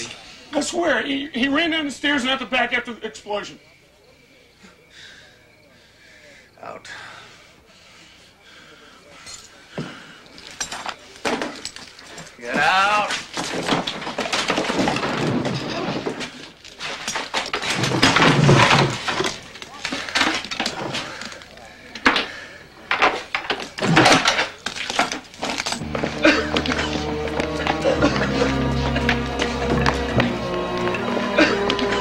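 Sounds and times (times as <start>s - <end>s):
fight knocks and crashes: 12.5s - 21.2s, 22.9s - 31.0s
background music with low notes: 25.8s - 32.0s.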